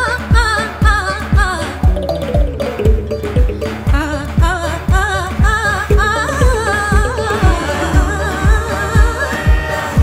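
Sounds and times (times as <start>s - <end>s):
bass: 0.0s - 10.0s
keyboard: 0.0s - 10.0s
drum beat: 0.3s - 9.7s
woman singing with vibrato: 3.9s - 10.0s.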